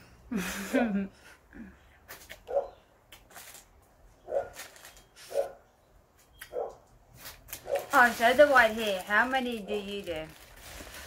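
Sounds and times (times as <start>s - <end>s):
dog barking: 2.5s - 2.8s, 4.3s - 4.6s, 5.3s - 5.6s, 6.5s - 6.8s.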